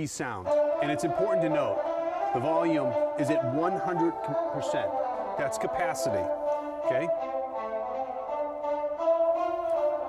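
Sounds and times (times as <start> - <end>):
orchestral music from tv speakers: 0.4 - 10.0.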